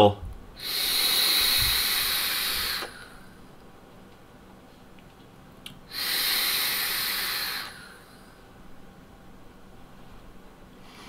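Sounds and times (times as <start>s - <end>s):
person's forceful breath: 0.6s - 3.4s, 5.9s - 8.4s.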